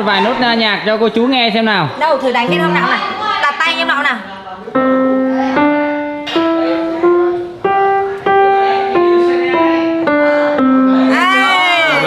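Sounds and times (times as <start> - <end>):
piano notes played slowly: 2.5 - 3.0, 4.7 - 12.0.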